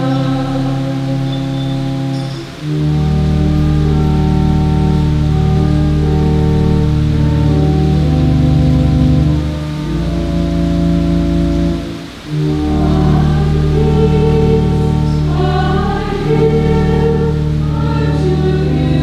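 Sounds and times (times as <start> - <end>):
organ playing sustained chords: 0.0 - 19.0.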